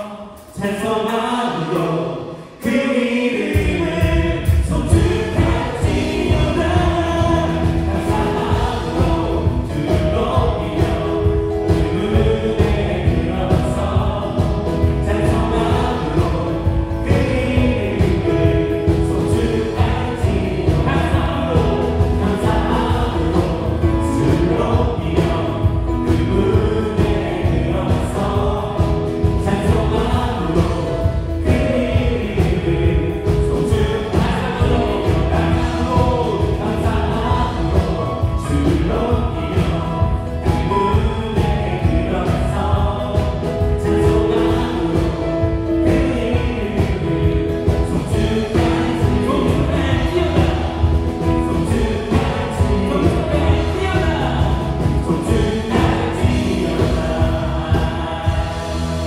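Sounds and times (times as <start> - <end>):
gospel band playing: 0.0 - 59.0
people singing: 0.0 - 59.0.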